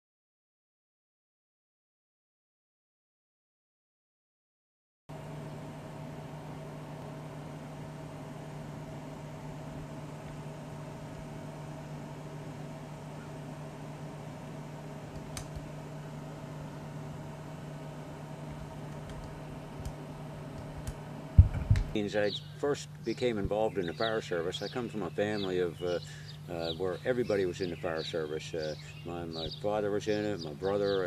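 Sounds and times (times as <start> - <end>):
machine hum: 5.1 - 31.0.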